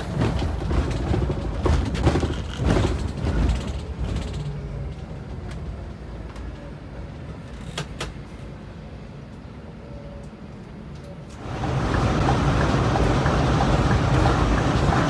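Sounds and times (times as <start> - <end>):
rattles and knocks: 0.0 - 4.6
coach engine and road rumble: 0.0 - 15.0.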